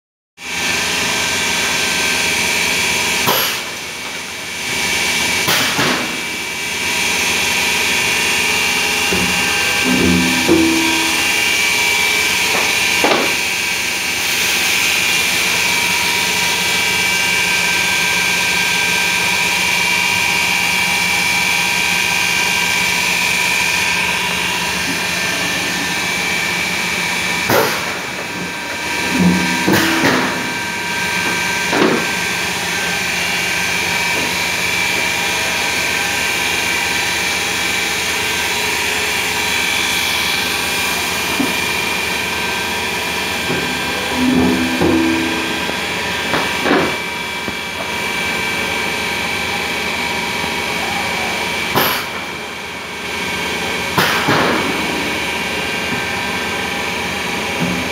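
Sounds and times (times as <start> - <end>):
machine humming with fixed tones: 0.5 - 57.9
machine clanks and knocks: 9.0 - 13.5, 27.5 - 32.2, 43.3 - 47.2.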